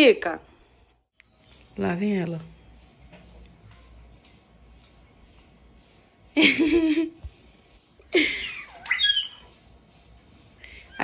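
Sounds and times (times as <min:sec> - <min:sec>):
baby squealing: 0:08.3 - 0:09.5.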